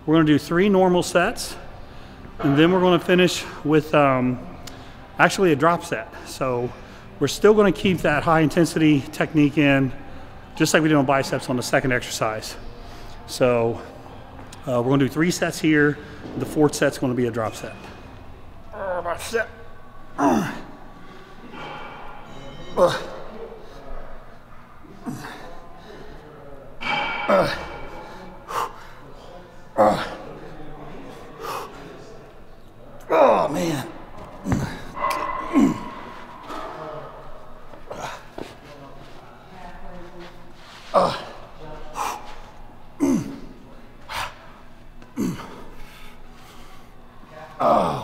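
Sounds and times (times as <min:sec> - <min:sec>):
man grunting: 0:35.4 - 0:36.1, 0:43.0 - 0:43.5, 0:45.2 - 0:45.6, 0:47.6 - 0:48.0.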